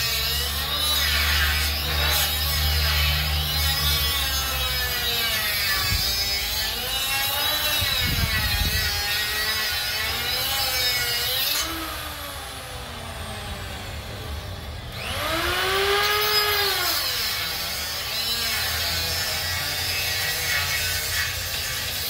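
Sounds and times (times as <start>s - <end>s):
angle grinder cutting steel: 0.0s - 22.0s.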